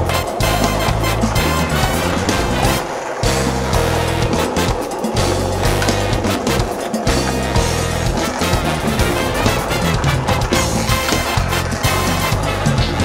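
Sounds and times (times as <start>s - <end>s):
background music with beat: 0.0s - 13.0s
skateboard wheels rolling on concrete: 0.0s - 13.0s.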